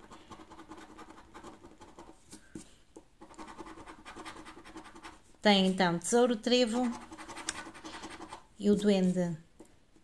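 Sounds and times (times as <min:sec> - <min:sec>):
coin scratching scratch card: 0:00.0 - 0:02.2, 0:03.2 - 0:05.2, 0:06.8 - 0:08.4.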